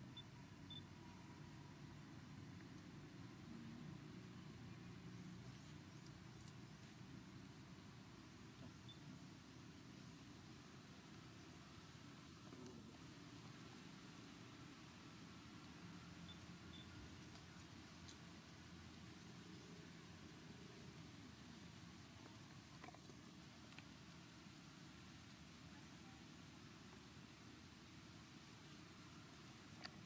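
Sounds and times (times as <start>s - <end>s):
faint ticks: 5.4s - 6.9s, 16.3s - 18.4s.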